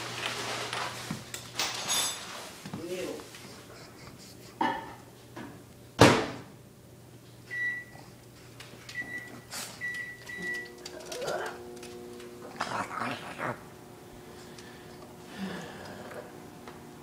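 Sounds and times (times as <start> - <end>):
appliance humming: 0.0 - 17.0
door shutting thump: 6.0 - 6.4
keypad beeps: 8.9 - 10.8.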